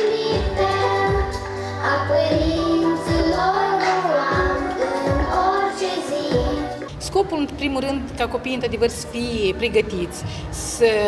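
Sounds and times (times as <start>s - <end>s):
children singing: 0.0s - 6.9s
musical accompaniment: 0.0s - 7.2s.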